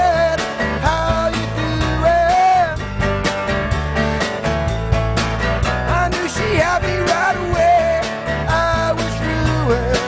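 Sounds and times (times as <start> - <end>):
man singing: 0.0 - 2.9, 5.7 - 10.0
drums keeping a steady beat: 0.0 - 10.0
electric bass: 0.0 - 10.0
strummed acoustic guitar: 0.0 - 10.0.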